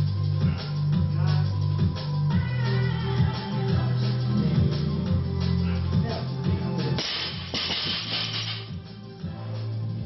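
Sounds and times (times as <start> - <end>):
background music: 0.0 - 10.0
barbell plates bouncing and rolling: 7.0 - 8.7.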